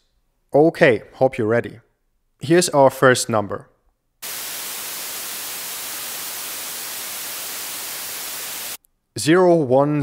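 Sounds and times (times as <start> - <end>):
white noise hiss: 4.2 - 8.8.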